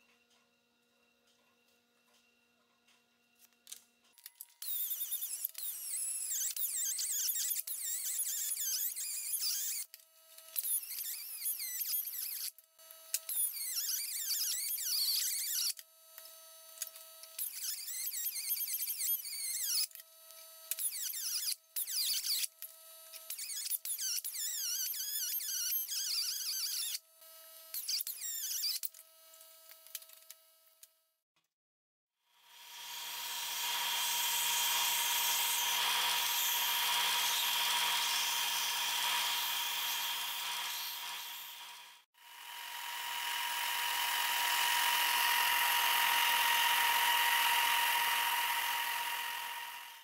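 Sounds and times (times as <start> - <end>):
rotary tool whining: 4.3 - 27.0, 32.4 - 50.0
cutoff wheel screeching on metal: 33.0 - 42.0, 42.7 - 50.0.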